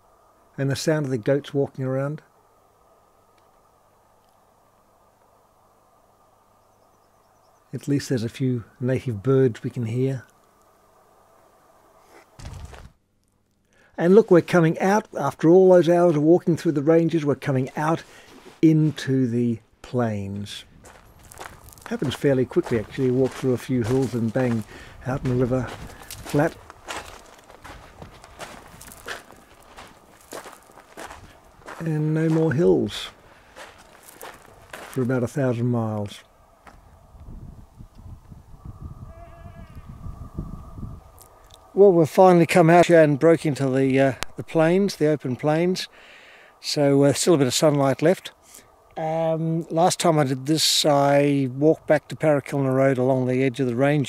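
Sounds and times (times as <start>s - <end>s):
low irregular rumble: 7.7s - 45.6s
goat bleating: 39.1s - 39.8s.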